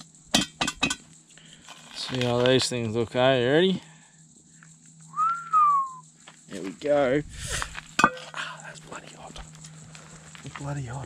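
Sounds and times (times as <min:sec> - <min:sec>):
whistled note gliding down: 0:05.1 - 0:06.0.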